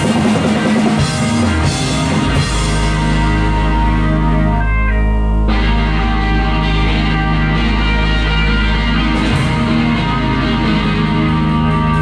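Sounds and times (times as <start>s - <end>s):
held guitar notes ringing: 0.0s - 12.0s
rock band playing live: 0.0s - 12.0s.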